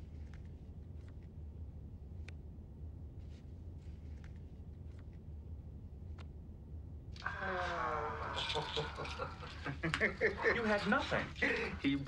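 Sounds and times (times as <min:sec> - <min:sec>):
person laughing: 0:07.5 - 0:10.6.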